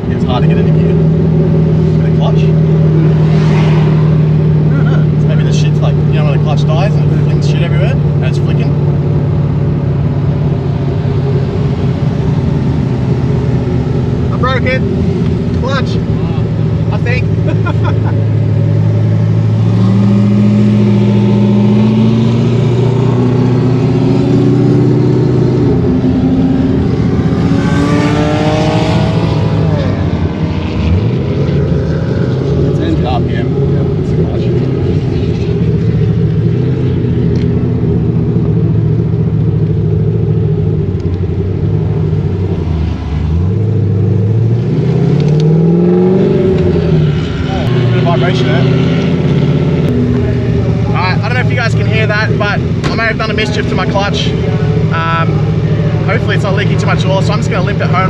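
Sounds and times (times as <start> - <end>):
car engine revving: 0.0 - 58.0.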